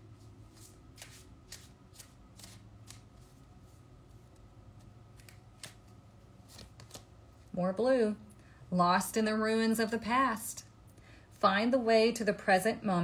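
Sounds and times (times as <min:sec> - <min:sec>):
cards being shuffled by hand: 0:00.2 - 0:07.5.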